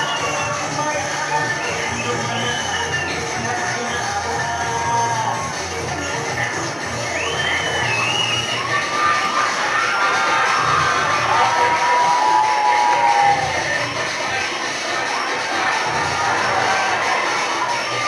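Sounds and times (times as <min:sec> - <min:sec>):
audience cheering and shouting: 0:00.0 - 0:18.0
dance music with pulsing beat: 0:00.0 - 0:18.0.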